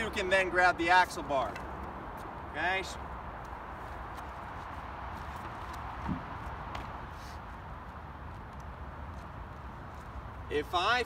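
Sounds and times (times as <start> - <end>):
outdoor background hiss: 0.0 - 11.0
footsteps on asphalt: 1.4 - 10.5.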